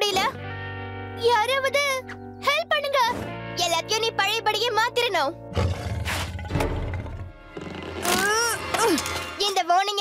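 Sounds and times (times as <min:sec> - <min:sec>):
background music: 0:00.0 - 0:10.0
deep rough growl: 0:05.5 - 0:07.9.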